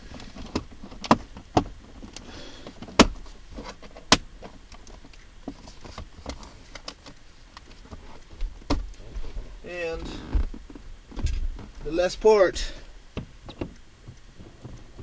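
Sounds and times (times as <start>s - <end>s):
light plastic ticks and rubbing: 0.0s - 12.1s, 13.1s - 15.0s.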